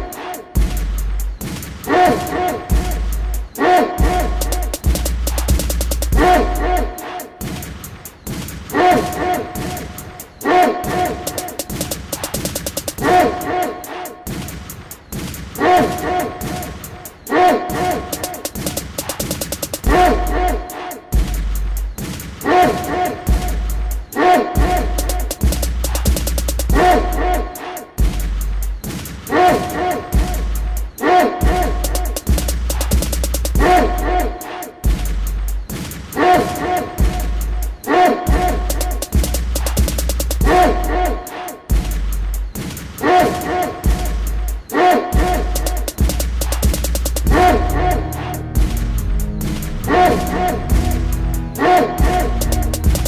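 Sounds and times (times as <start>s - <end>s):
hi-hat rolls: 0.0s - 53.0s
hip hop instrumental beat: 0.0s - 53.0s
deep bass notes: 0.6s - 1.4s, 2.7s - 6.9s, 19.8s - 20.6s, 23.3s - 28.8s, 31.5s - 34.3s, 37.0s - 41.0s, 45.2s - 53.0s
repeating synth riff: 2.7s - 7.0s, 18.0s - 20.4s, 45.2s - 53.0s.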